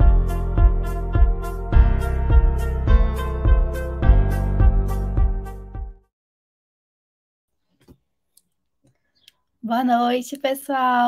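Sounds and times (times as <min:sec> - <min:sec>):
woman speaking: 0:09.6 - 0:11.0.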